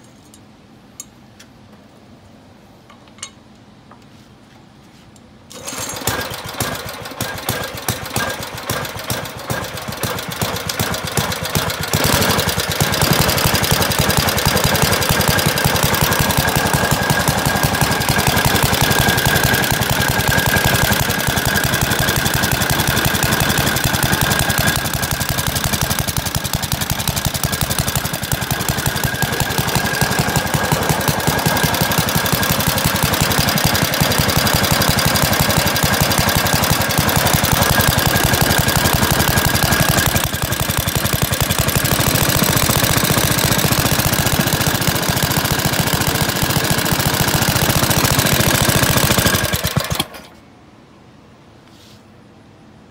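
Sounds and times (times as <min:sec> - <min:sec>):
single-cylinder engine running: 0:05.6 - 0:50.4.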